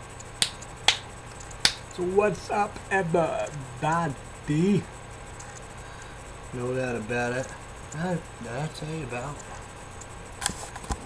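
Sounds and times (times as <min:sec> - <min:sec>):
sharp loud clicks: 0:00.2 - 0:02.0.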